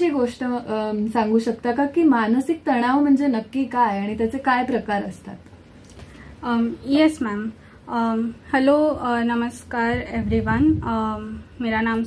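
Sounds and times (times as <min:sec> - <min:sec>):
women speaking: 0:00.0 - 0:05.5, 0:06.4 - 0:12.0.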